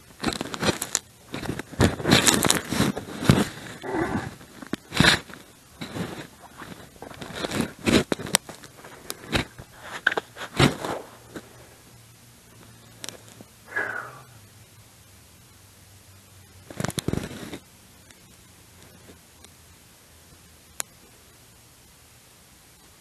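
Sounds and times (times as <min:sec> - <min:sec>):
short scrapes and crunches: 0:00.2 - 0:11.7.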